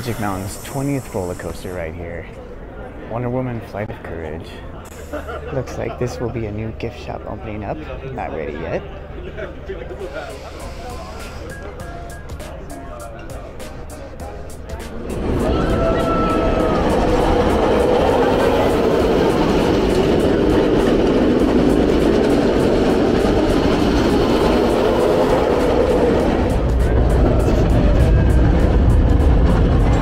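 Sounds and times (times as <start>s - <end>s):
roller coaster rumbling on track: 0.0s - 30.0s
riders screaming: 15.2s - 19.6s.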